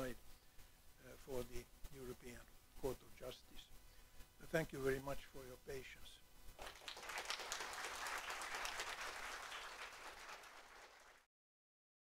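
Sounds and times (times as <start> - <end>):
audience applauding: 6.6 - 11.3.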